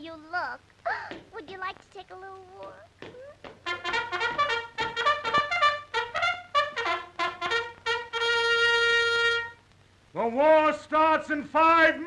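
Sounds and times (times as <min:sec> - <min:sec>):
military trumpet call: 0:03.6 - 0:09.6.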